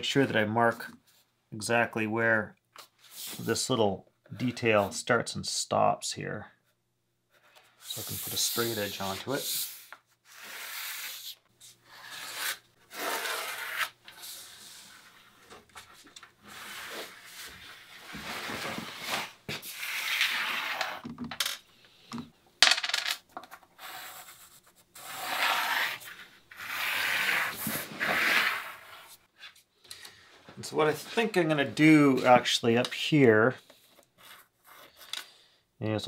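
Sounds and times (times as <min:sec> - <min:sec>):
pencil scratching on wood: 0:23.8 - 0:29.2, 0:33.7 - 0:35.1.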